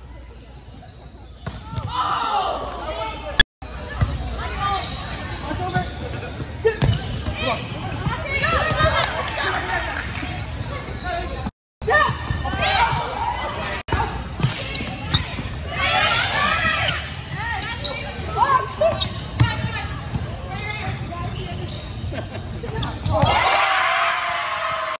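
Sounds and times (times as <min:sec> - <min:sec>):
players shouting in gym: 0:23.0 - 0:25.0.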